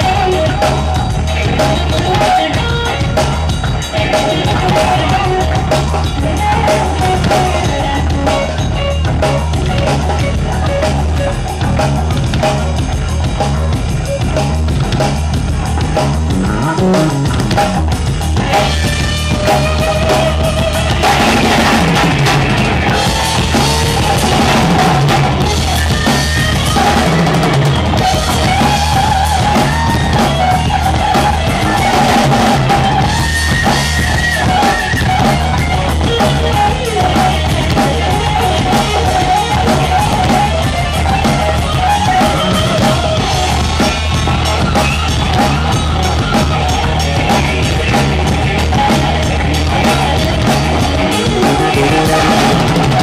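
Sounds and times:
bass guitar: 0:00.0 - 0:53.0
drum kit beat: 0:00.0 - 0:53.0
electric guitar: 0:00.0 - 0:53.0.

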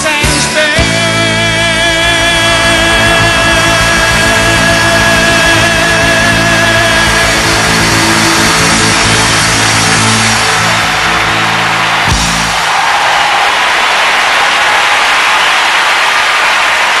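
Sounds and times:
rock band closing chord: 0:00.0 - 0:14.3
crowd applauding and cheering: 0:00.8 - 0:17.0.

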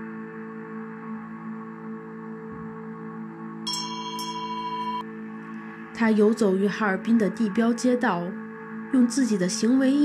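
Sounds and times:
ambient music drone: 0:00.0 - 0:10.0
bright bell-like chime strikes: 0:03.7 - 0:05.0.

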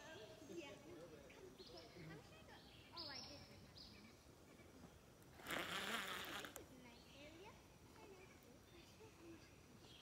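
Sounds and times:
fishing reel spool whirring: 0:05.4 - 0:06.6.

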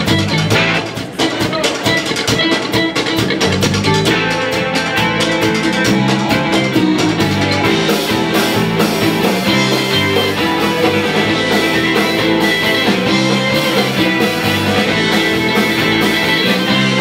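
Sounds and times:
live folk band playing: 0:00.0 - 0:17.0.

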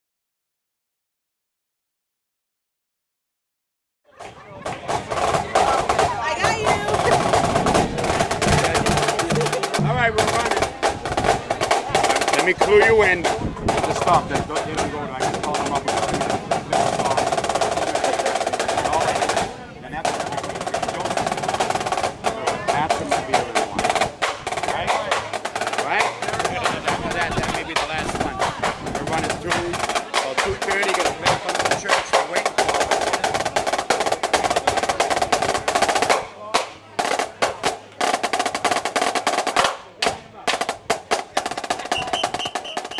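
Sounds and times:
marching snare drums: 0:04.2 - 0:42.9.

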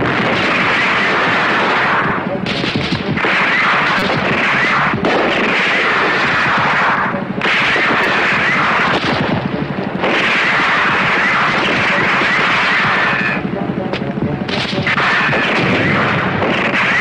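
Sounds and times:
dense continuous gunfire: 0:00.0 - 0:17.0.

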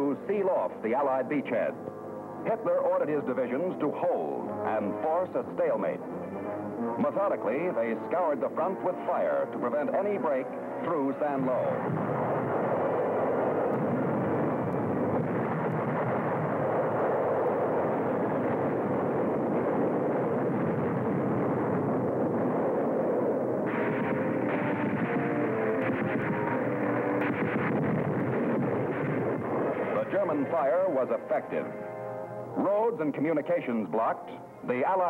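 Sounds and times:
shellfire and explosions: 0:07.0 - 0:32.0.

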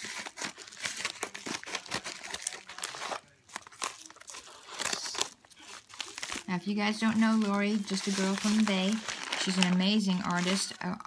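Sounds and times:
scissors cutting padded mailer: 0:00.0 - 0:05.4, 0:07.1 - 0:11.0
paper crinkling and rustling: 0:00.0 - 0:11.0.

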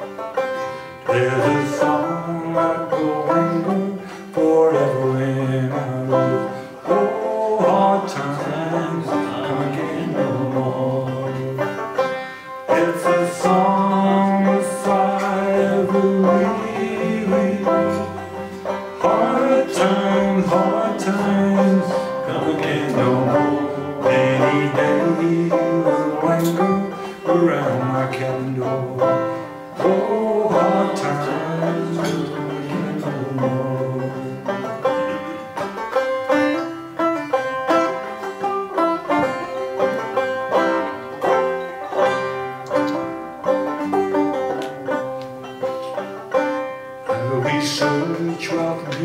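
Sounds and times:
man singing a folk song: 0:00.0 - 0:49.0
plucked banjo: 0:00.0 - 0:49.0.

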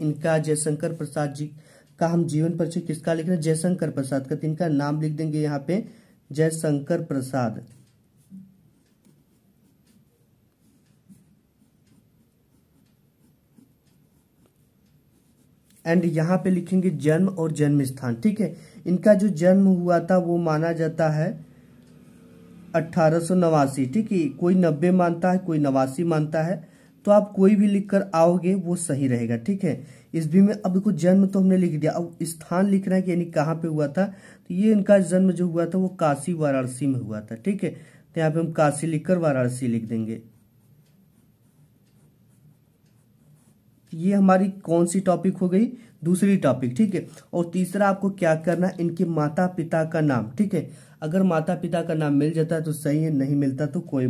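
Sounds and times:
ballpoint pen scratching on paper: 0:07.8 - 0:16.0, 0:40.2 - 0:43.7.

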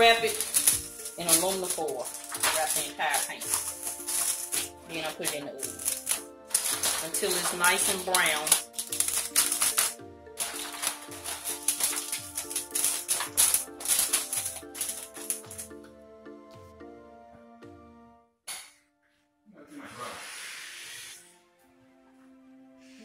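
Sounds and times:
aluminum foil crinkling: 0:00.0 - 0:15.8
background music with beat: 0:00.0 - 0:18.2
hiss: 0:19.8 - 0:21.4.

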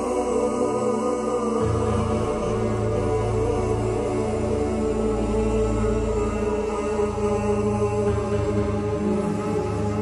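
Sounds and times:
deep bass: 0:00.0 - 0:10.0.

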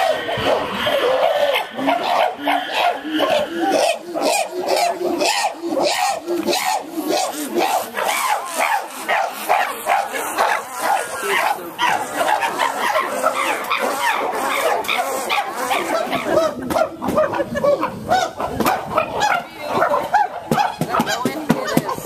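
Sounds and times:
chimpanzees hooting and barking: 0:00.0 - 0:22.0.

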